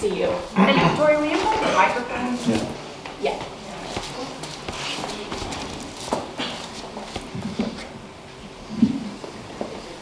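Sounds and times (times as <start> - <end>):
shuffling footsteps: 2.3 - 7.9.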